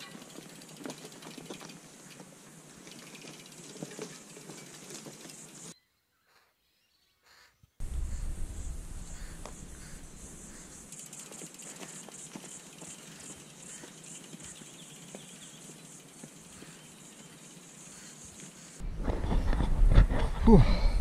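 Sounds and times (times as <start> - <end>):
wind buffeting microphone: 7.8 - 10.9, 18.8 - 21.0
high insect buzz: 7.8 - 18.8
faint ticks: 9.0 - 18.6
man breathing and sighing: 20.1 - 21.0.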